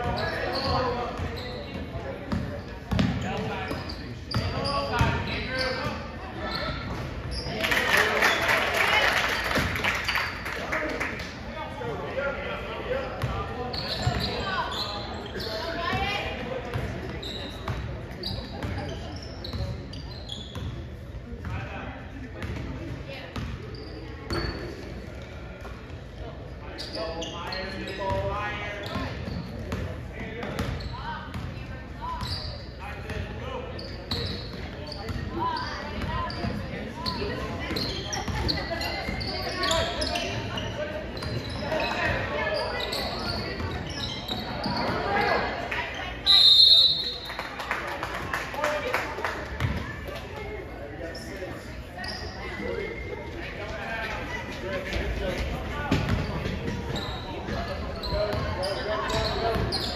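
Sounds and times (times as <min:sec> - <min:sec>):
sneaker squeaks: 0:00.0 - 0:08.6, 0:09.4 - 0:11.3, 0:13.1 - 0:21.6, 0:22.3 - 0:48.2, 0:49.6 - 0:59.9
voices chattering in hall: 0:00.0 - 0:59.9.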